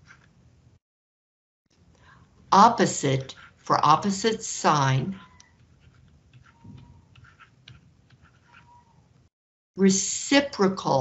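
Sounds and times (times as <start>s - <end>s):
pen scratching on tablet: 0.0s - 0.3s, 2.6s - 9.0s.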